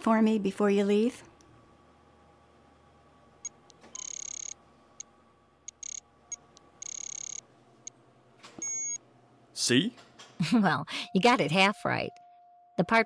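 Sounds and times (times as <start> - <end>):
high electronic beeps: 6.8 - 7.4.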